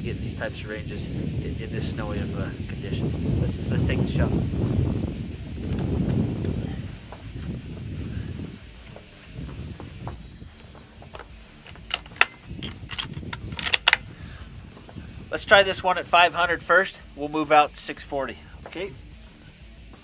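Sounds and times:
low rumble: 0.9s - 15.7s
rifle bolt clicks and clacks: 11.2s - 14.1s.

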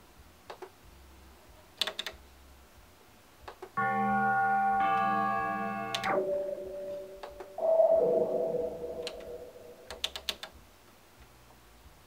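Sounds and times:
faint control clicks: 1.8s - 2.2s
synthesizer chords and notes: 3.8s - 10.3s.

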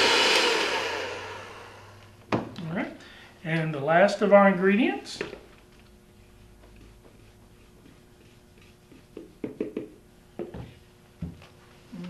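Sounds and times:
electric hand mixer whirring: 0.0s - 2.1s.

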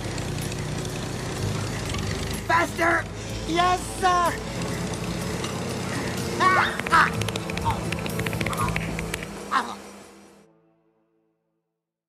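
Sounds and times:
background music: 0.0s - 11.7s.

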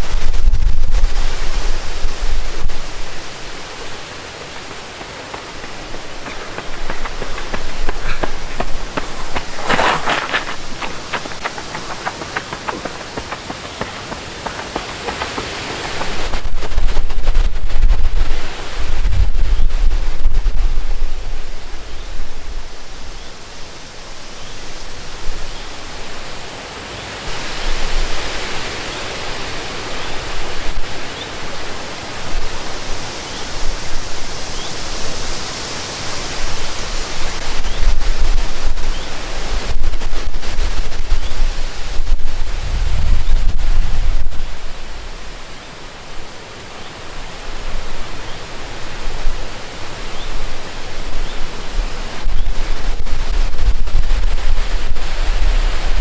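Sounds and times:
steady hiss: 0.0s - 56.0s
wind rumble on microphone: 0.0s - 56.0s
running footsteps on gravel: 2.4s - 19.3s.

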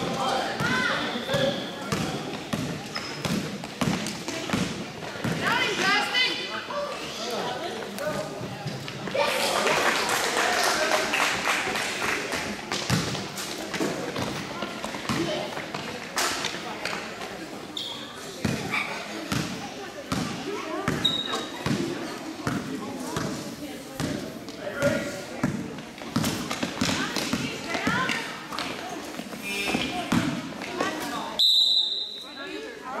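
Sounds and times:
echoing voices in a hall: 0.0s - 33.0s
sneaker squeaks: 0.5s - 6.0s, 17.6s - 22.6s, 26.2s - 32.8s
basketball bouncing on gym floor: 0.6s - 5.5s, 19.3s - 23.4s, 24.8s - 28.2s.

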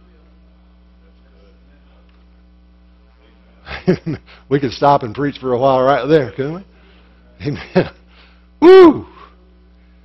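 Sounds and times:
electrical mains hum: 0.0s - 10.0s
man speaking: 4.5s - 6.7s, 7.4s - 8.0s.

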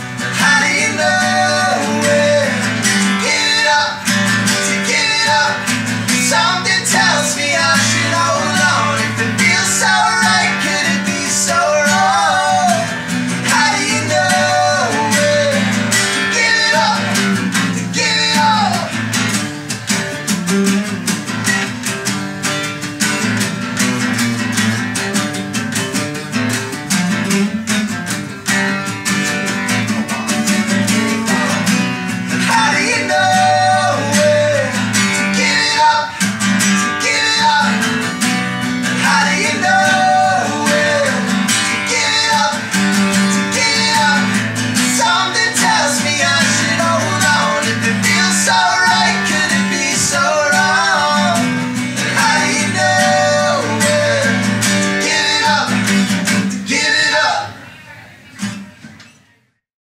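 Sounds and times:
men singing: 0.0s - 19.4s, 30.1s - 57.6s
acoustic guitar strumming: 0.0s - 59.2s.

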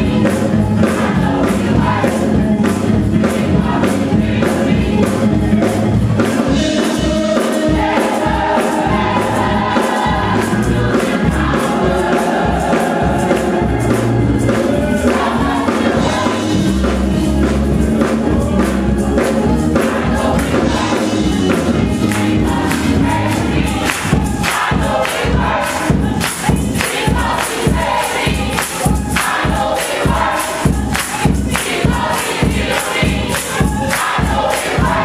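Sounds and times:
gospel choir singing: 0.0s - 35.0s
keyboard accompaniment: 0.0s - 35.0s
clapped beat: 19.2s - 35.0s.

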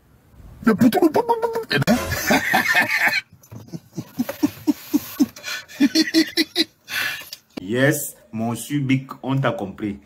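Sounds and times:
man laughing hard: 1.5s - 6.8s.

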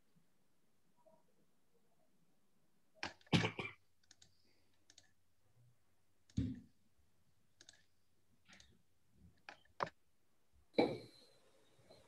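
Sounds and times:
computer mouse clicks: 3.0s - 3.3s, 4.0s - 5.2s, 7.6s - 7.9s, 8.5s - 8.7s, 9.4s - 10.0s.

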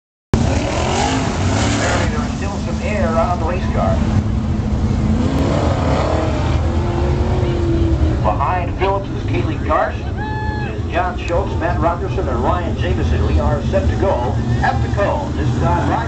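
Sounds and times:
deep engine rumble: 0.4s - 16.0s
race car engines passing: 0.4s - 16.0s
announcer voice over loudspeaker: 1.9s - 4.0s, 8.2s - 16.0s.

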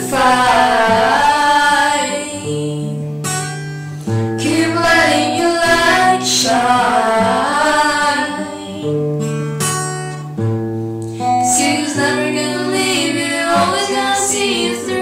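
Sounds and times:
person singing wordlessly: 0.0s - 2.8s, 4.4s - 8.9s, 11.5s - 15.0s
acoustic guitar chords: 0.0s - 15.0s.

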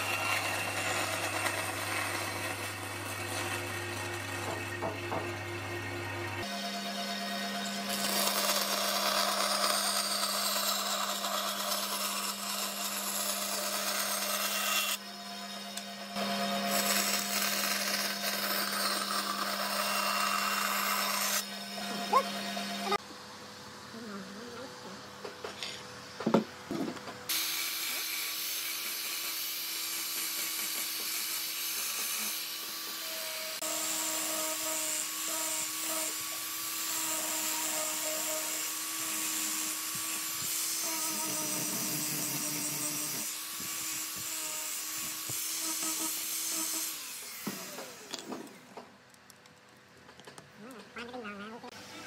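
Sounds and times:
angle grinder sanding wood: 0.0s - 4.9s, 6.4s - 23.0s, 27.3s - 48.6s.

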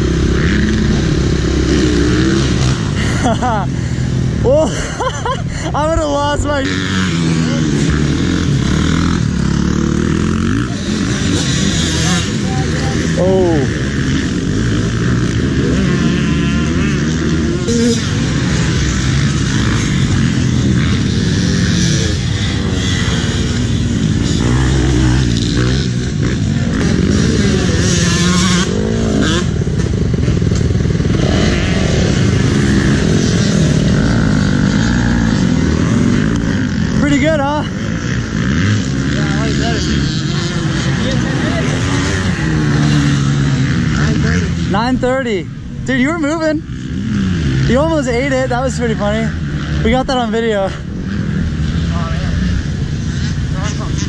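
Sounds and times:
people's voices: 0.0s - 16.1s, 30.6s - 46.7s, 51.7s - 54.0s
dirt bike engines revving: 0.0s - 54.0s.

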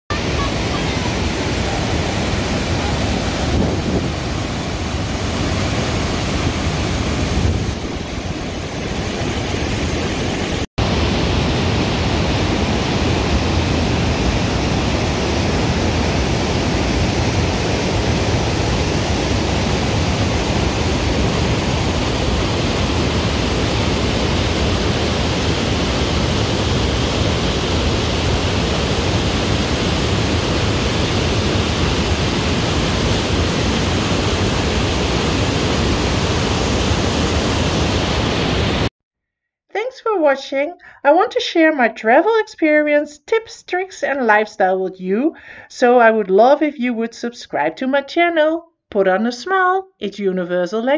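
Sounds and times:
waterfall rushing over boulders: 0.1s - 38.9s.

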